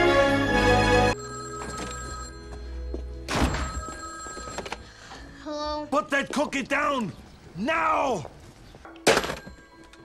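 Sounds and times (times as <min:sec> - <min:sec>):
quiet background music: 0:00.0 - 0:10.0
telephone ringing: 0:01.1 - 0:05.3, 0:09.2 - 0:10.0.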